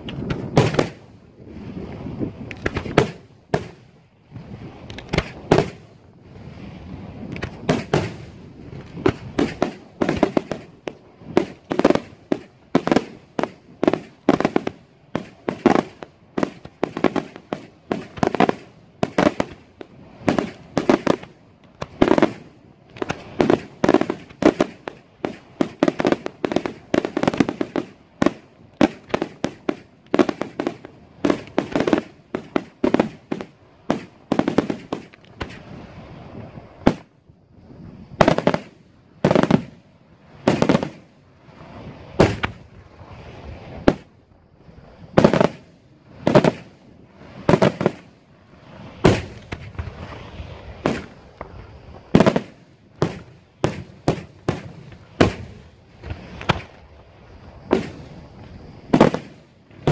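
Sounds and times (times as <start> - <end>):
fireworks bangs: 0.1 - 1.2, 2.5 - 6.0, 7.3 - 37.1, 38.2 - 41.1, 41.7 - 42.8, 43.7 - 44.1, 45.2 - 57.0, 57.6 - 59.9.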